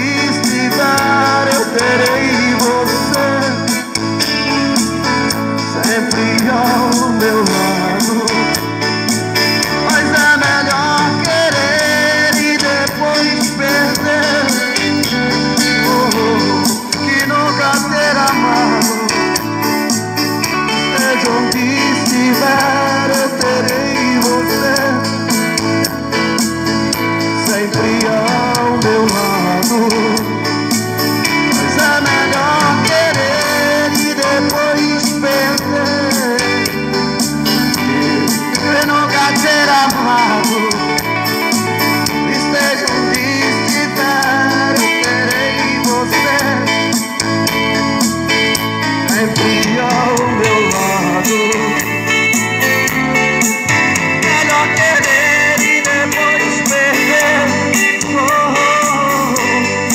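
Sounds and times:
man singing a slow ballad: 0.0 - 59.9
recorded instrumental accompaniment: 0.0 - 59.9.

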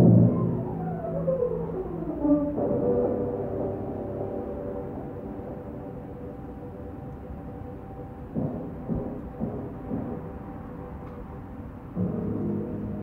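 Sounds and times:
faint held music tones: 0.0 - 13.0.

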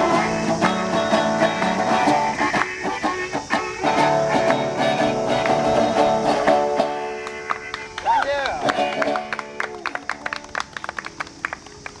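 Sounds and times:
small audience clapping: 6.9 - 12.0.

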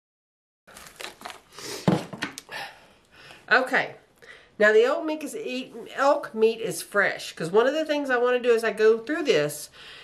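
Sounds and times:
plastic packaging crinkling: 0.7 - 2.4.

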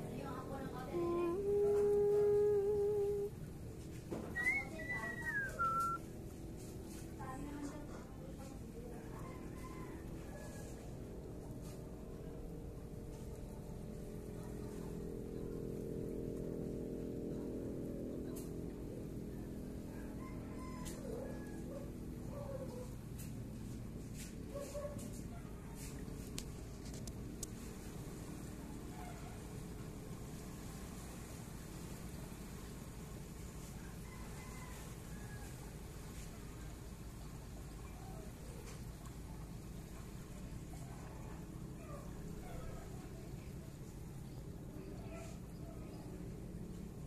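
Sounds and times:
steady low hum: 0.0 - 47.0
person humming a held note: 0.8 - 3.4
bird calling: 4.3 - 6.1.

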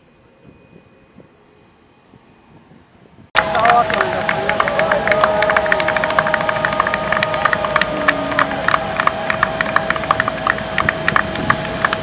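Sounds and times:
steady mechanical whine: 3.3 - 12.0
crowd clapping: 3.4 - 12.0.

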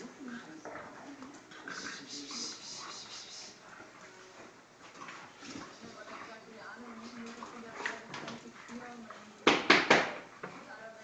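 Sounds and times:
dogs low vocal sounds: 0.1 - 3.9
dogs scuffling on tiled floor: 0.2 - 9.4.

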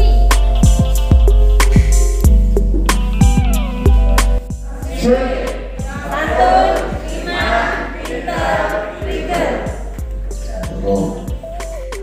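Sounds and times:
music with steady beat: 0.0 - 12.0
group of voices singing: 4.6 - 11.3.

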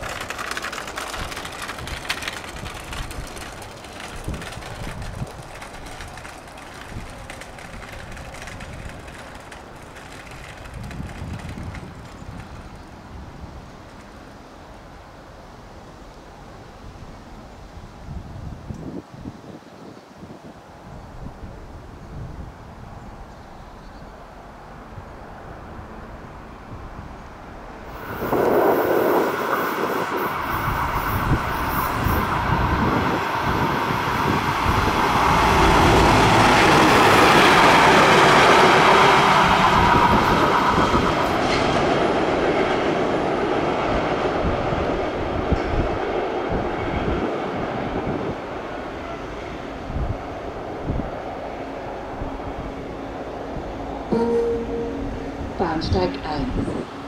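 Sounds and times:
train wheels on rails: 0.0 - 15.0, 24.4 - 55.2
freight train passing: 0.0 - 17.8, 24.1 - 57.0.

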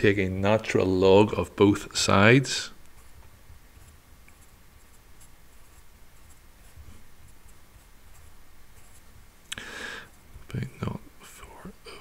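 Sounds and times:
pencil scratching on paper: 3.8 - 9.2.

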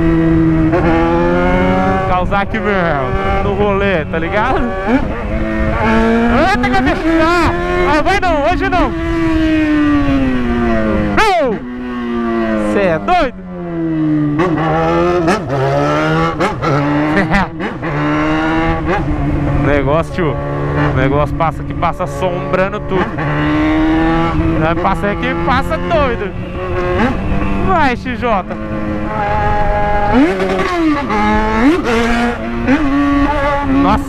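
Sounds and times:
motorcycle engine running: 0.0 - 34.0.

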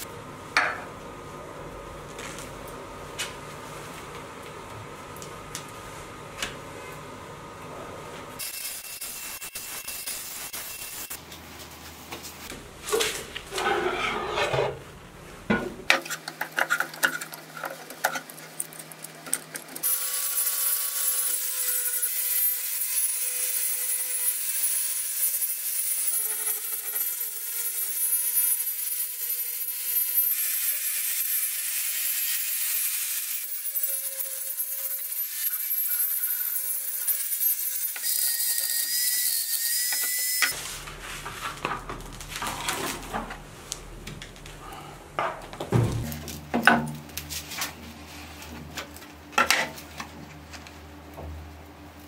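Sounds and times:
hand tool scraping wood: 13.5 - 14.8
angle grinder wire wheel whining: 19.7 - 40.6.

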